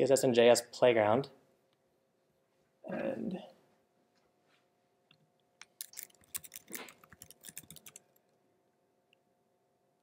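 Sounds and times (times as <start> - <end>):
laptop keyboard keystrokes: 5.6 - 8.2.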